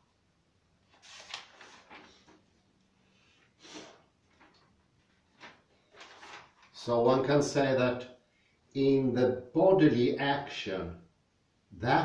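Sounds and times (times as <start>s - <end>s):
paper rustling: 0.8s - 2.6s, 3.7s - 6.8s
man speaking: 6.8s - 8.1s, 8.8s - 11.0s, 11.8s - 12.0s.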